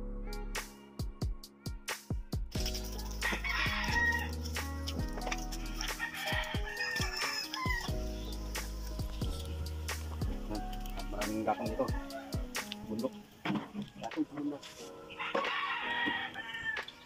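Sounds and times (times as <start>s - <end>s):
background music with bass notes: 0.0s - 17.0s
rooster crowing: 2.9s - 4.4s, 5.6s - 8.0s, 11.3s - 12.6s, 15.1s - 17.0s.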